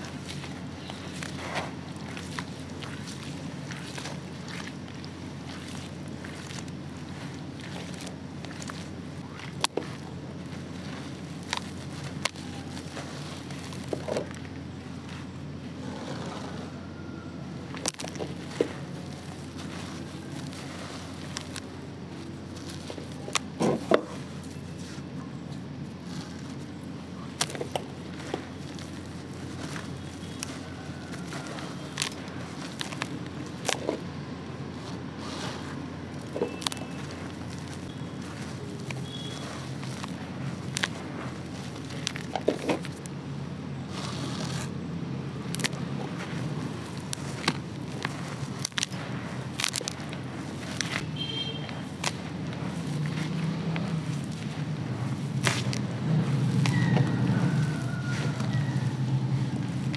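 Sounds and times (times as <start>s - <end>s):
steady low background noise: 0.0s - 59.9s.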